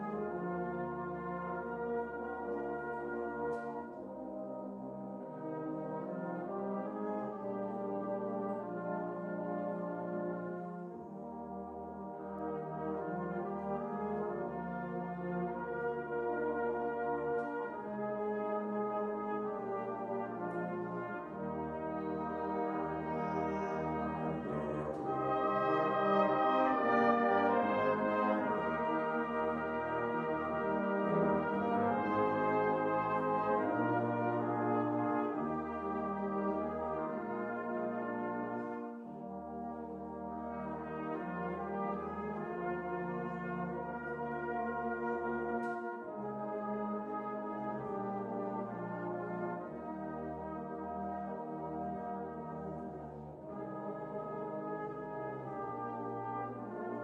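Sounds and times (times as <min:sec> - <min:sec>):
brass band playing chords: 0:00.0 - 0:57.0.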